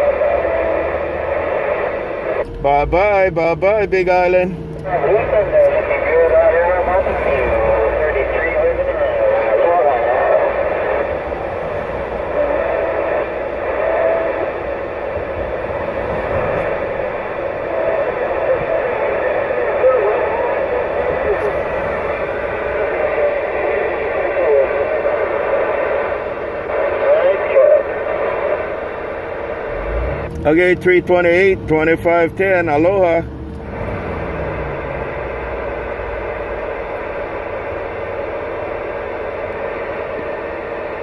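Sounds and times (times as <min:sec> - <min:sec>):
garbled radio voice: 0:00.0 - 0:29.0
radio static: 0:00.0 - 0:33.2, 0:34.6 - 0:41.0.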